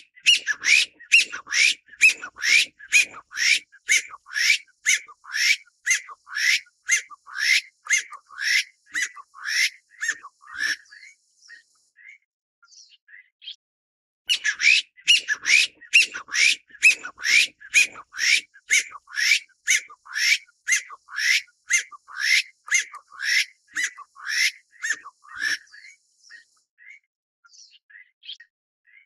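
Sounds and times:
bird calling sharp repeated notes: 0.0s - 11.2s, 14.3s - 26.5s
faint bird chirps: 0.0s - 13.6s, 14.3s - 29.0s.

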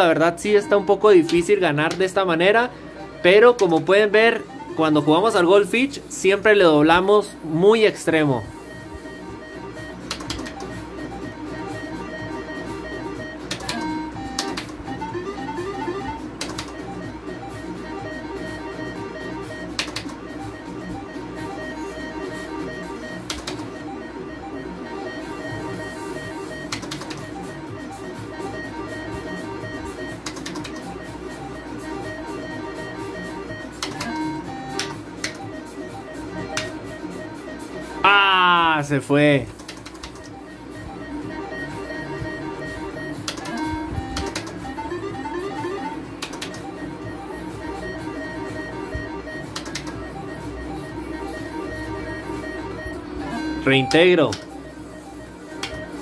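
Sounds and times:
slot machine game music: 0.0s - 56.0s
sharp clicks: 10.0s - 10.7s, 13.4s - 14.8s, 16.4s - 16.8s, 19.7s - 20.2s, 23.2s - 23.7s, 26.7s - 27.3s, 30.2s - 30.9s, 33.8s - 35.4s, 36.5s - 36.8s, 39.5s - 40.4s, 43.2s - 44.6s, 46.2s - 46.6s, 49.5s - 50.0s, 54.3s - 54.5s.

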